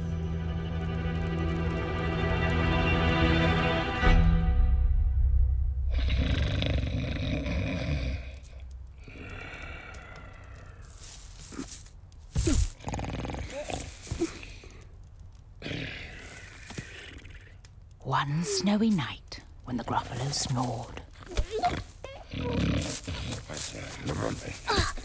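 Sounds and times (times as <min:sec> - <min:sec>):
monster snoring: 0:05.9 - 0:11.8, 0:12.5 - 0:14.5, 0:21.4 - 0:24.7.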